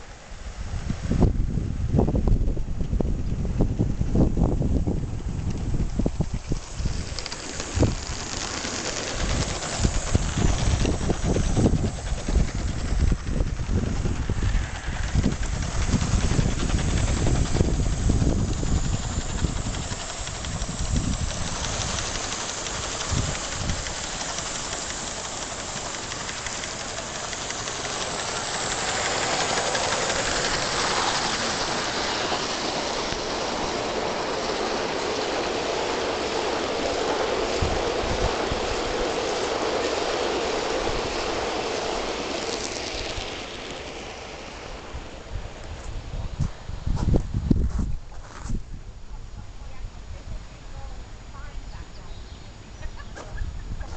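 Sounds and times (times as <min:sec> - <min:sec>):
model steam train running on rails: 0:00.0 - 0:53.9
wind buffeting microphone: 0:00.3 - 0:53.9.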